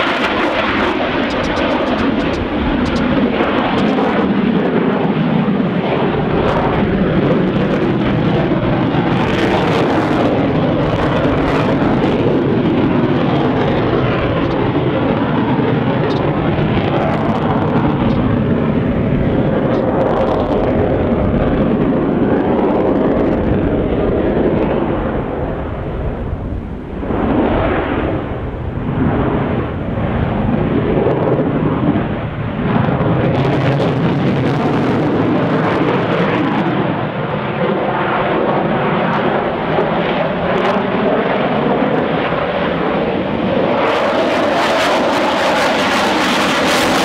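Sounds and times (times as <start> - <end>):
fighter jet roaring overhead: 0.0 - 47.0.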